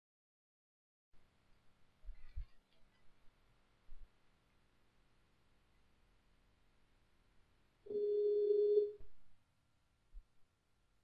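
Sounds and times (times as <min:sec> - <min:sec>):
telephone ringback tone: 0:07.9 - 0:09.0.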